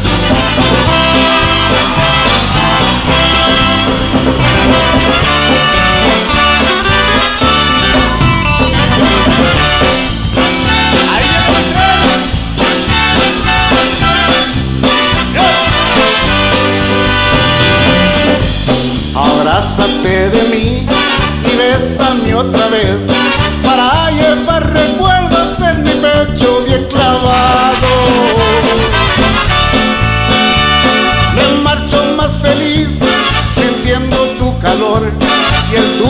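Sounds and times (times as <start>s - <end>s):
bass guitar: 0.0s - 36.0s
brass instruments: 0.0s - 36.0s
drums: 0.0s - 36.0s
electric guitar: 0.0s - 36.0s
live band playing: 0.0s - 36.0s
man singing: 9.4s - 16.8s, 19.0s - 36.0s.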